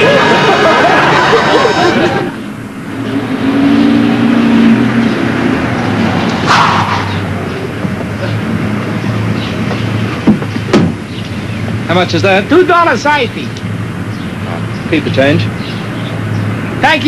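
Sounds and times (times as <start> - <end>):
steady low hum: 0.0 - 16.8
road traffic noise: 0.0 - 17.0.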